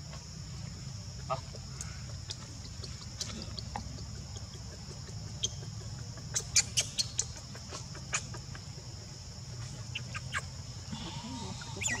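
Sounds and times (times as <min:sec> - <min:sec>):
baby monkey squeaking: 0:05.0 - 0:08.5, 0:09.8 - 0:10.5, 0:11.6 - 0:12.0.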